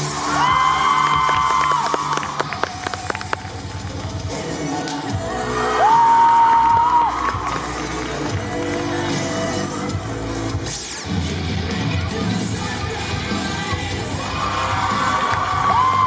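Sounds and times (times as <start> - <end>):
crowd cheering: 0.0 - 4.1, 5.4 - 8.7, 14.2 - 16.0.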